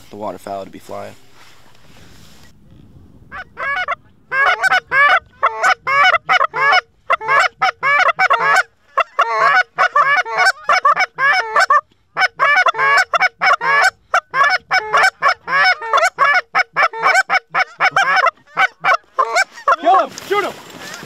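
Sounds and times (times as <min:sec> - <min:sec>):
goose calls honking: 0:03.3 - 0:21.0.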